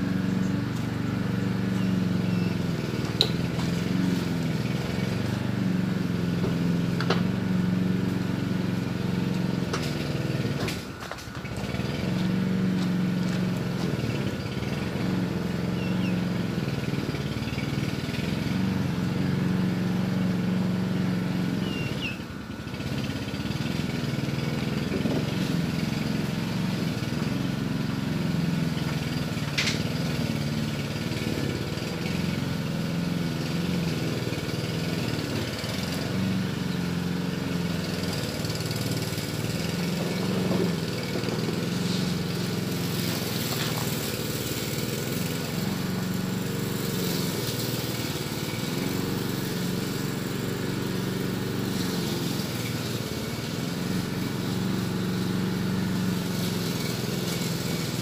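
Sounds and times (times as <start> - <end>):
engine idling: 0.0 - 58.0.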